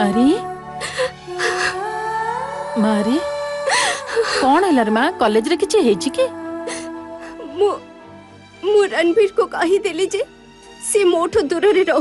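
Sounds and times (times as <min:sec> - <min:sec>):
background music held notes: 0:00.0 - 0:12.0
woman sobbing and whimpering: 0:00.6 - 0:01.9, 0:03.3 - 0:05.0.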